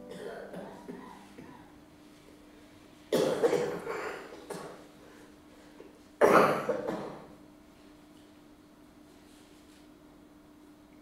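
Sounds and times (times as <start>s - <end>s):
person coughing: 0.0s - 1.7s, 3.1s - 4.8s, 6.2s - 7.3s.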